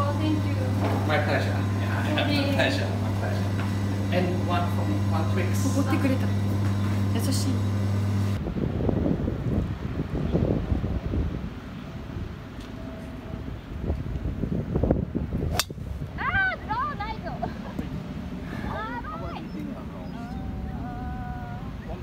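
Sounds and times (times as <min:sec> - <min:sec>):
wind buffeting microphone: 0:08.4 - 0:22.0
golf club striking ball: 0:15.5 - 0:15.9.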